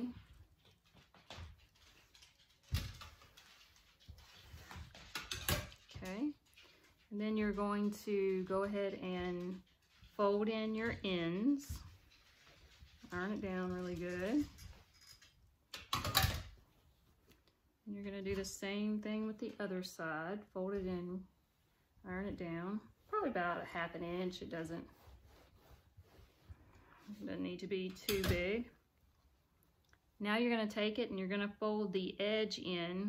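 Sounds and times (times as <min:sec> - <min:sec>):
fabric rustling: 0:22.5 - 0:27.3.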